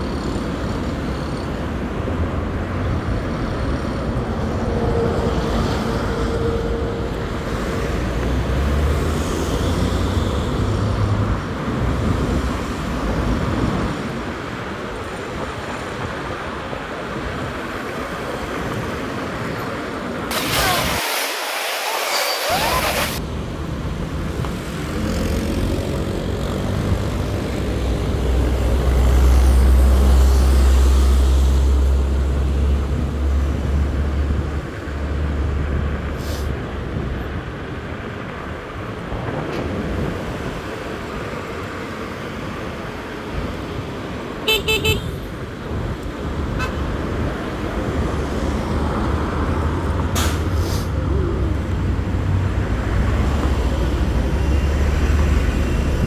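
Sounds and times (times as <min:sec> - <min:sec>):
deep traffic rumble: 0:00.0 - 0:21.0, 0:22.4 - 0:56.0
road and wind noise: 0:00.0 - 0:56.0
vehicle horn short toots: 0:44.5 - 0:45.1.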